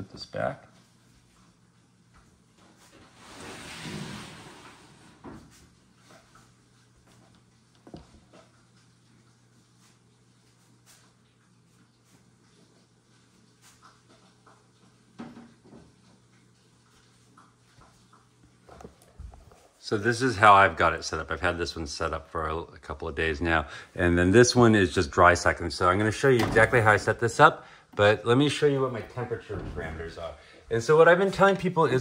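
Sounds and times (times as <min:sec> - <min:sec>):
plastic sliding scrape: 0:03.2 - 0:05.1.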